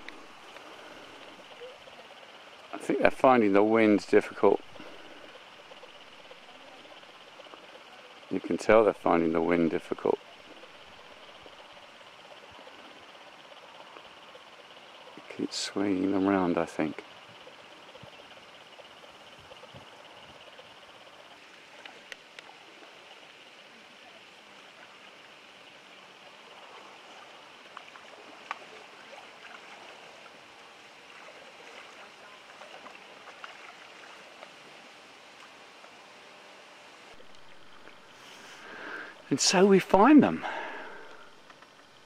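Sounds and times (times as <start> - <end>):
water and wind hiss: 0.0 - 42.0.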